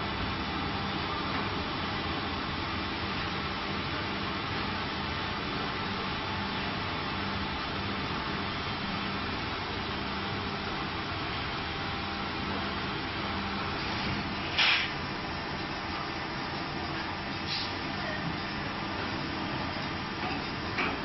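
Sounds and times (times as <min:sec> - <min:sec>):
machine mechanical hum: 0:00.0 - 0:21.0
short hiss: 0:14.5 - 0:15.0, 0:17.4 - 0:17.8.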